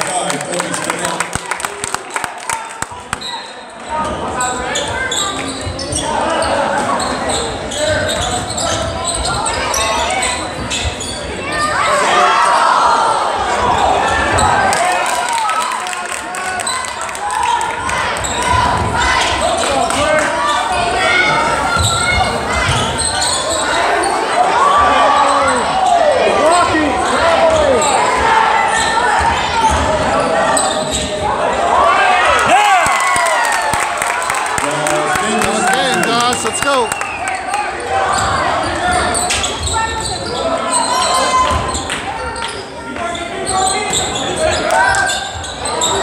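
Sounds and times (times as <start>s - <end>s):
crowd voices echoing: 0.0s - 46.0s
sneakers squeaking: 3.0s - 12.6s, 16.6s - 31.2s, 34.7s - 46.0s.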